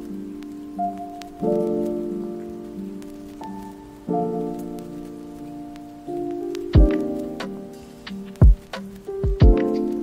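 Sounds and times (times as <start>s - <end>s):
faint crackling clicks: 0.0s - 10.0s
lo-fi hip-hop keyboard chords: 0.0s - 10.0s.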